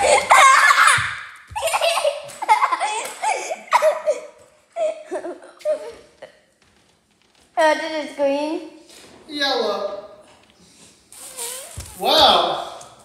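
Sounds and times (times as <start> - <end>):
child laughing: 0.0 - 6.3.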